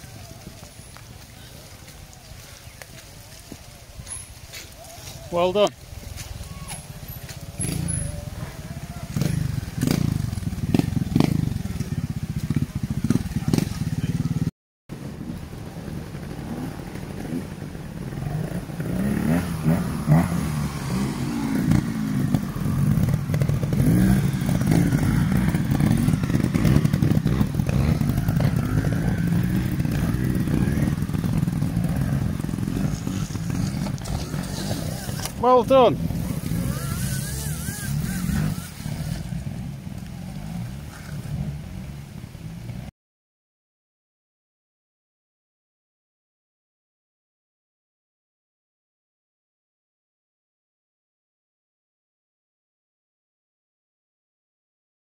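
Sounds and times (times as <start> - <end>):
bike rattling over rough ground: 0.0 - 42.9
motorcycle engine revving: 5.3 - 14.5, 15.7 - 42.9.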